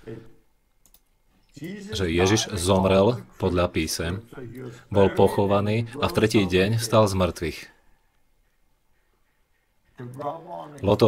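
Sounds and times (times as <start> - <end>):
faint clicks: 0.7 - 1.6
man speaking: 1.6 - 7.8, 10.0 - 11.0.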